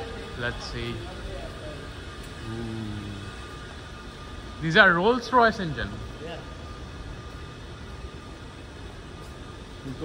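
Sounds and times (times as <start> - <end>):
faint steady hum: 0.0 - 10.0
low rumble and hiss: 0.0 - 10.0.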